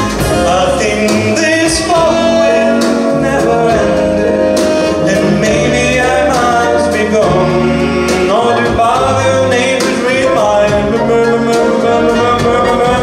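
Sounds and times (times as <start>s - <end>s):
accordion: 0.0s - 13.0s
man singing with band: 0.0s - 13.0s.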